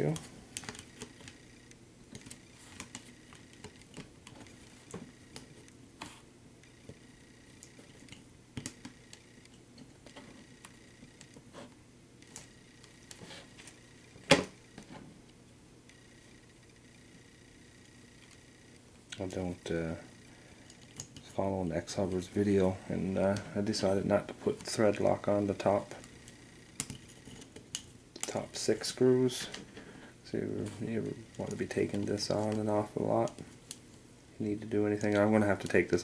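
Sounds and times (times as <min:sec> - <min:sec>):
parts clicking and tapping: 0:25.9 - 0:28.4.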